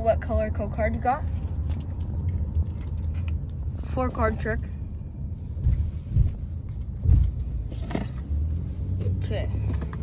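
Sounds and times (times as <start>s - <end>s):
low rumble inside car: 0.0s - 10.0s.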